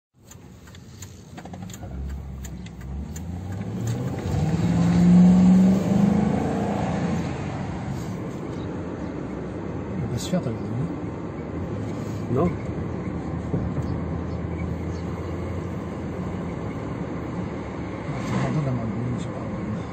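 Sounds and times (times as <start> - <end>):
car engine accelerating: 0.2 - 19.9.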